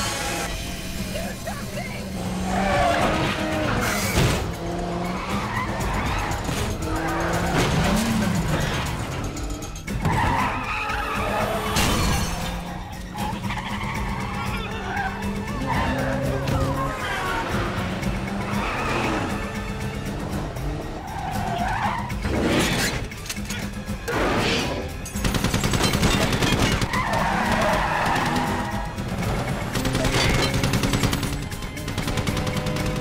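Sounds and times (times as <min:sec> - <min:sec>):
car engines running hard: 0:00.0 - 0:33.0
tyres skidding: 0:00.0 - 0:33.0.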